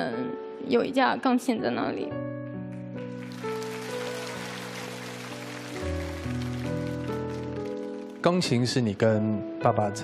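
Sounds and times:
soft music of sustained chords: 0.0 - 10.0.

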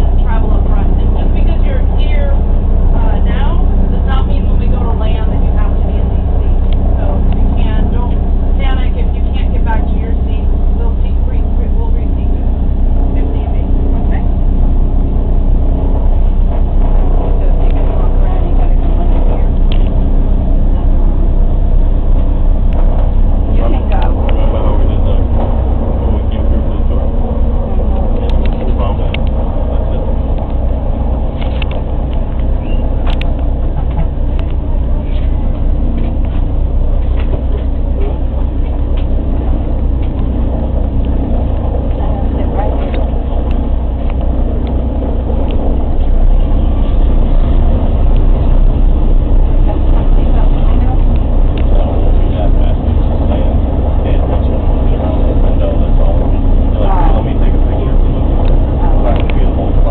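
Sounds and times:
radial piston engines running: 0.0 - 59.9.

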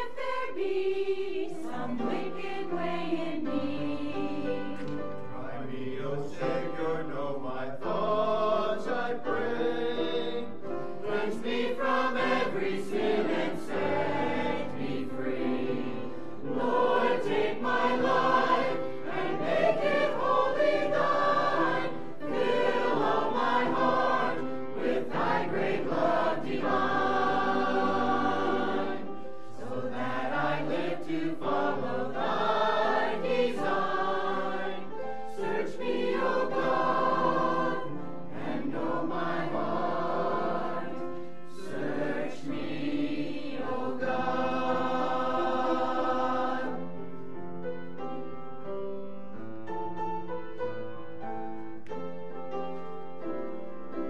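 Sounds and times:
mixed choir singing: 0.0 - 47.1.

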